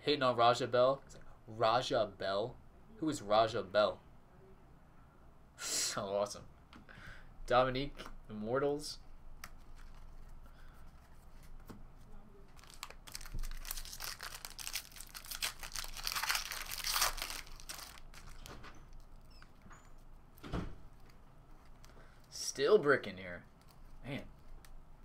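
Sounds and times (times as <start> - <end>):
cards clicking and rustling: 9.4 - 11.8, 12.5 - 19.6, 23.5 - 24.8
foil wrapper tearing and crinkling: 12.5 - 18.5.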